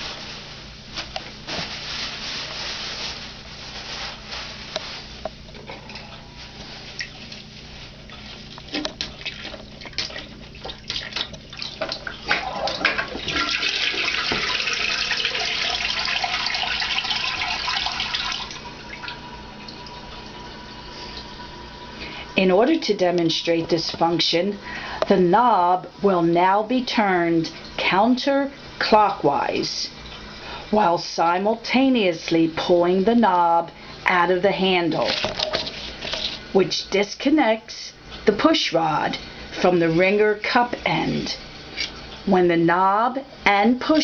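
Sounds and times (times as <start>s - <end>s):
toilet paper rustling: 0.0s - 24.9s, 34.1s - 36.6s
toilet flushing: 8.7s - 42.3s.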